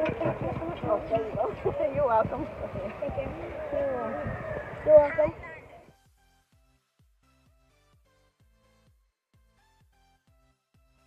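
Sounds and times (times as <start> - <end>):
indistinct talking: 0.0 - 5.9.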